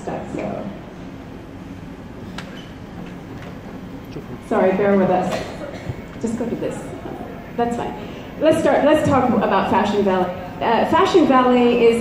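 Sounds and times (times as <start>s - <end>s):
faint murmur: 0.0s - 12.0s.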